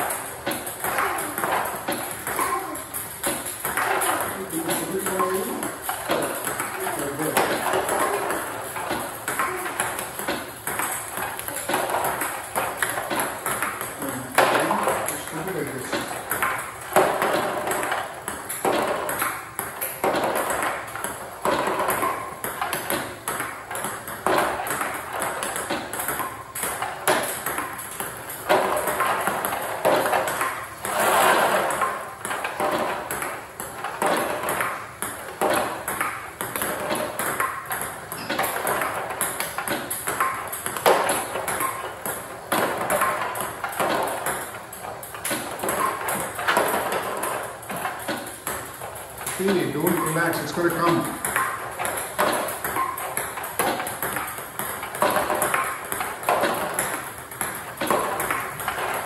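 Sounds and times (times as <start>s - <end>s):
ball bouncing on table: 0.0s - 59.0s
ball clicking off bats: 0.0s - 59.0s.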